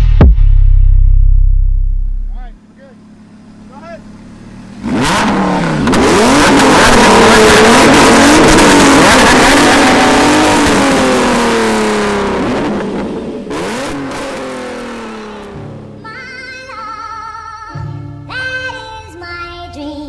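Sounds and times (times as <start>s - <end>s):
car engine revving loudly: 3.0s - 15.9s.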